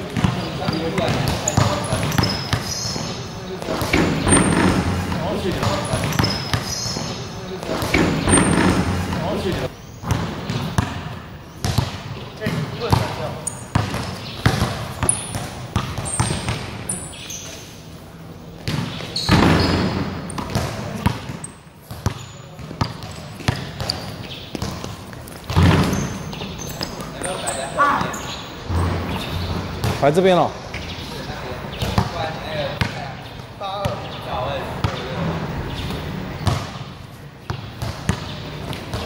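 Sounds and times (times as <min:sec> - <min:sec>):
basketball dribbling on hard court: 0:03.8 - 0:07.1, 0:07.9 - 0:16.8, 0:18.6 - 0:27.0.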